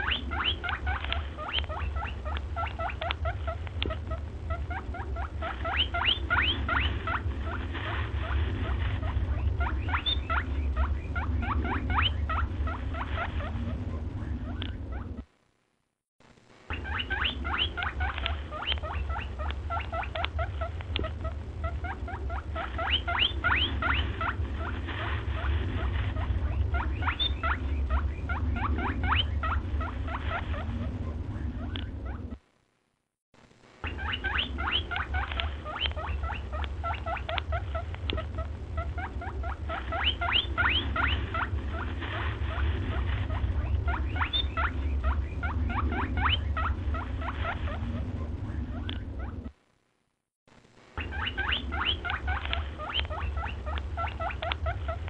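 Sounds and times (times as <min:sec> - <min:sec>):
rapid high squeaky chirps: 0:00.0 - 0:13.6, 0:16.7 - 0:30.9, 0:33.8 - 0:47.9
low steady hum: 0:00.0 - 0:55.0.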